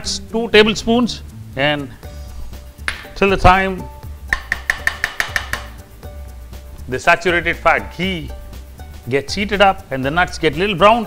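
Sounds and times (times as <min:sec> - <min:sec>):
spatula clicking against a pan: 0:04.3 - 0:05.8.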